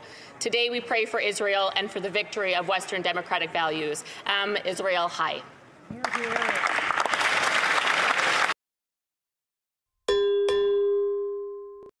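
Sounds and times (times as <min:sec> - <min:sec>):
notification bell dings: 0:10.1 - 0:11.9.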